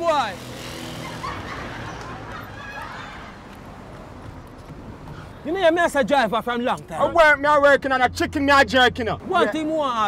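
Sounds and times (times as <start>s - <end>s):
low rumble of street traffic: 0.0s - 10.0s.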